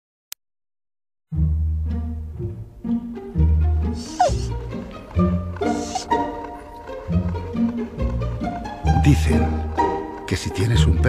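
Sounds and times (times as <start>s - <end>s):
trailer music with plucked low strings: 1.3s - 11.0s
dog whining: 4.0s - 4.7s, 5.6s - 7.0s
dog yelping: 4.0s - 4.7s, 5.6s - 6.9s.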